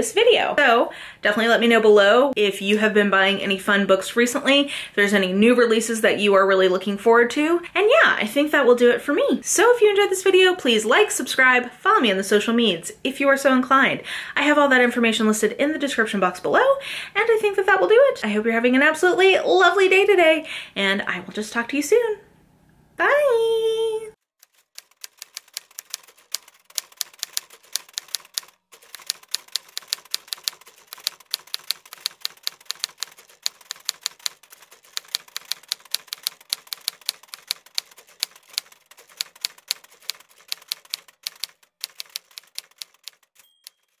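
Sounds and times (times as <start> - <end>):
keyboard typing clicks: 24.4 - 44.0
short high ding: 43.4 - 44.0.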